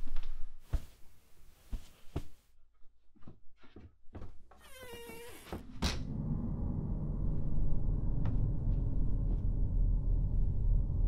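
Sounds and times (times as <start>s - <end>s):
low rumbling drone: 5.6s - 11.0s.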